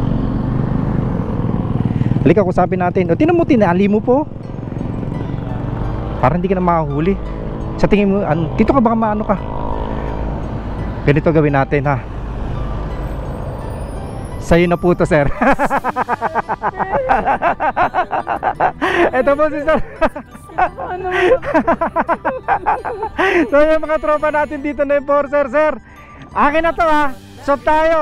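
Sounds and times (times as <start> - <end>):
passing vehicles rumble: 0.0 - 28.0.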